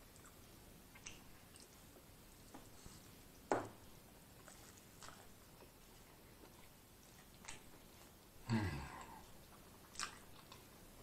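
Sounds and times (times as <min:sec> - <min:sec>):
mouth chewing food: 0:00.0 - 0:11.0.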